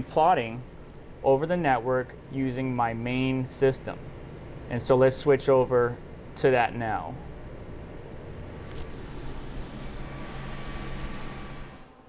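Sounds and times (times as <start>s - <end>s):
computer cooling fans whirring: 0.0s - 12.0s
low hum: 0.0s - 12.0s.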